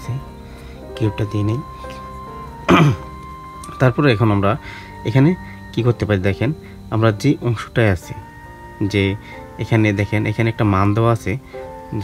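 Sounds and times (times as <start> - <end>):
background music of sustained notes: 0.0 - 12.0
person speaking: 0.0 - 12.0.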